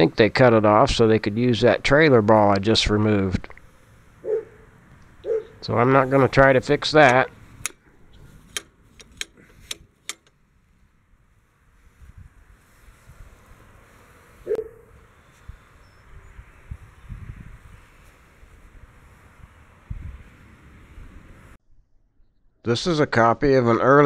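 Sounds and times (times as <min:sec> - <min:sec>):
wind buffeting microphone: 0:11.2 - 0:21.6.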